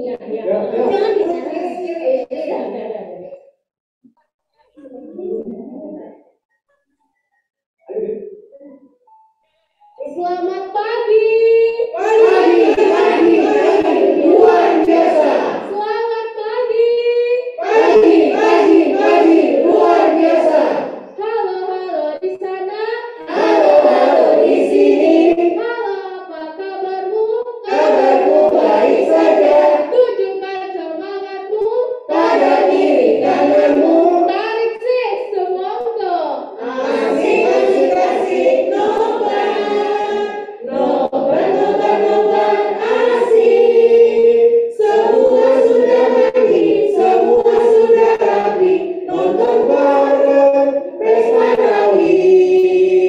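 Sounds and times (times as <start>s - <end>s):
children and women singing: 0.0s - 2.7s, 9.9s - 35.8s, 36.4s - 53.0s.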